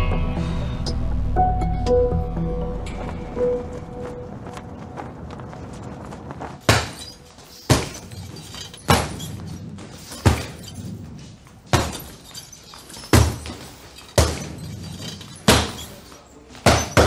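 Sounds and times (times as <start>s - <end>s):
punches thudding on heavy bag: 6.6s - 10.8s, 11.7s - 12.3s, 13.0s - 14.7s, 15.4s - 16.0s, 16.6s - 17.0s.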